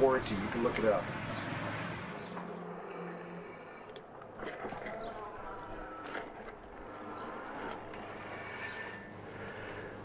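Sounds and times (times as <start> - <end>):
brakes squealing: 0.3 - 10.0
bike rolling: 2.2 - 10.0.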